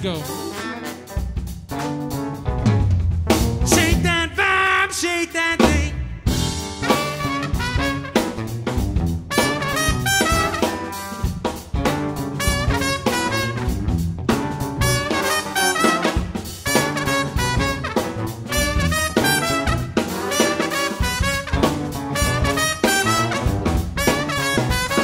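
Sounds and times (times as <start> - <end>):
horn section playing: 0.0 - 2.9, 3.7 - 11.4, 12.0 - 25.0
drum kit: 0.0 - 25.0
electric bass: 2.1 - 4.5, 5.6 - 15.2, 16.1 - 20.2, 21.0 - 25.0.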